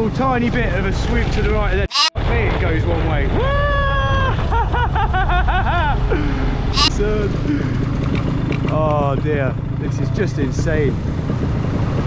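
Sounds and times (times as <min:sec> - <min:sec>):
paramotor engine rumble: 0:00.0 - 0:12.0
man laughing: 0:03.3 - 0:08.0.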